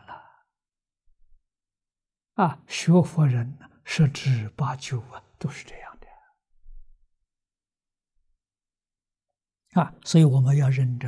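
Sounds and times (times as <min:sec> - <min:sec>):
elderly man speaking softly: 0:00.0 - 0:00.4, 0:02.4 - 0:06.4, 0:09.7 - 0:11.0.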